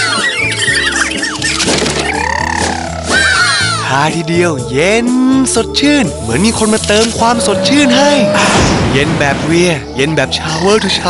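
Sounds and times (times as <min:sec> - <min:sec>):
high-pitched cartoon squeals: 0:00.0 - 0:03.8, 0:06.9 - 0:08.5
background music low notes: 0:00.0 - 0:11.0.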